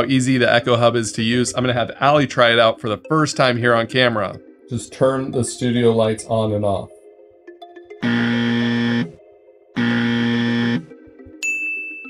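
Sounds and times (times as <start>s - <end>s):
soft background music: 0.0s - 12.0s
electronic buzzer tones: 8.0s - 9.2s, 9.8s - 11.0s.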